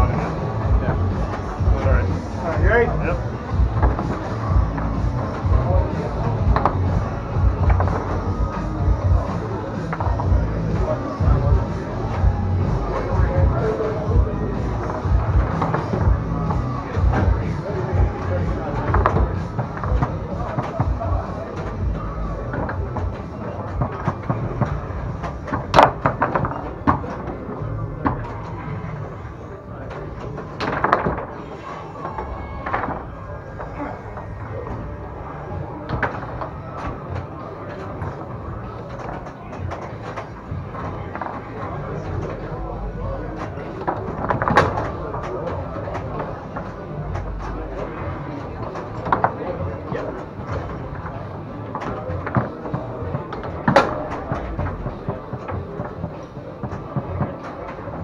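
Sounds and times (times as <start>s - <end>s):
background voices: 0.0s - 58.0s
foosball ball knocking: 3.6s - 13.8s, 14.7s - 29.1s, 30.1s - 31.4s, 35.7s - 58.0s.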